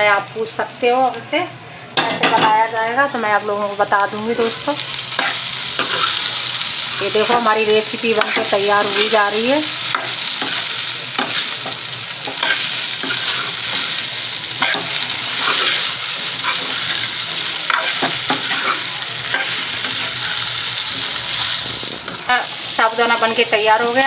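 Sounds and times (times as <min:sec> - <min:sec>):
food sizzling in hot oil: 0:00.0 - 0:24.0
metal spoon scraping a pan: 0:05.2 - 0:06.3, 0:07.0 - 0:22.4.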